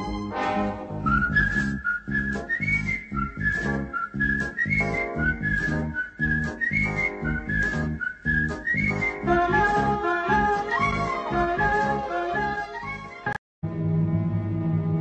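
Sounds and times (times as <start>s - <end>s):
wooden flute melody: 0.0s - 13.4s
backing track with steady beat: 0.9s - 12.7s.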